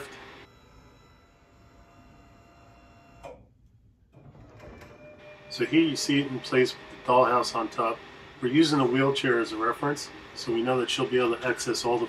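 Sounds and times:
scissor lift motor humming: 0:00.0 - 0:03.4, 0:04.2 - 0:12.0.

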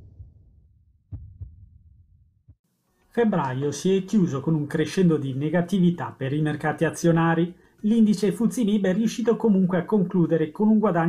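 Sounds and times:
heartbeat-like double thumps: 0:00.0 - 0:02.6.

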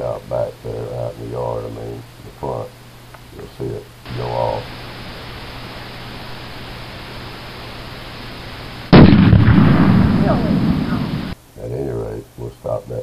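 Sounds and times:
steady hiss: 0:00.0 - 0:13.0
balloon explosion bang: 0:08.9 - 0:11.4.

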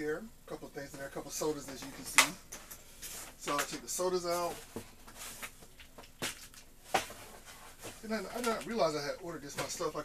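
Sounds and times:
cardboard boxes knocking and scraping: 0:06.2 - 0:08.2.

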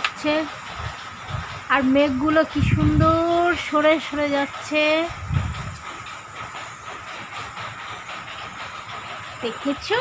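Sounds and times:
wind buffeting microphone: 0:00.7 - 0:03.7, 0:05.0 - 0:05.9.

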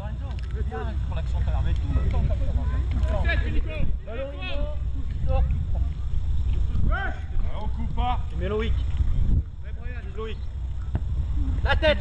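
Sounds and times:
wind rumbling on microphone: 0:00.0 - 0:12.0
young voices shouting: 0:06.8 - 0:07.4.

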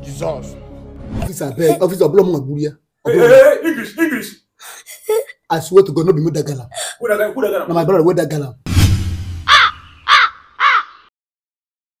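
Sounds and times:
crow cawing: 0:09.4 - 0:11.1.

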